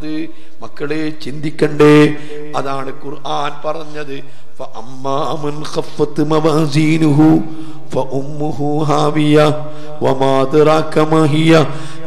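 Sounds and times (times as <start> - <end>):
man chanting in sing-song: 0.0 - 12.0.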